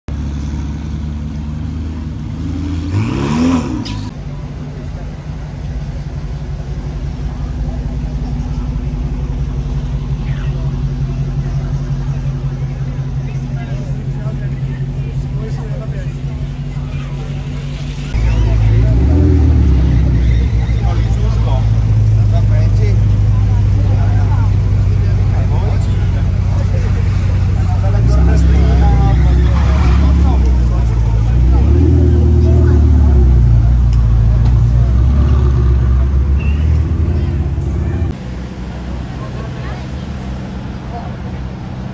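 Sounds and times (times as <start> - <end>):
deeper car engine revving: 0.1 - 5.9, 6.7 - 38.2
sports car engine idling and revving: 0.1 - 41.9.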